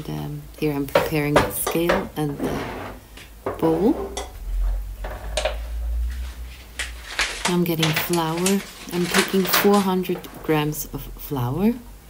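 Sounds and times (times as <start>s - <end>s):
low rumble: 3.8s - 9.2s.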